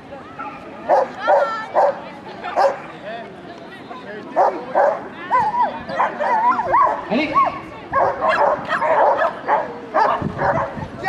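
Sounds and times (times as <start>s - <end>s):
dog barking: 0.4s - 2.0s, 2.6s - 2.8s, 4.4s - 7.0s, 7.9s - 10.8s.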